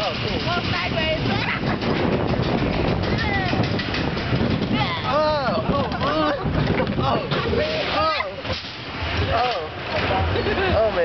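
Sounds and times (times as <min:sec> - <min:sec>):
wind on microphone: 0:00.0 - 0:10.7
roller coaster car on steel track: 0:00.0 - 0:11.0
riders laughing and calling: 0:01.2 - 0:02.4, 0:05.0 - 0:08.6, 0:09.2 - 0:11.0.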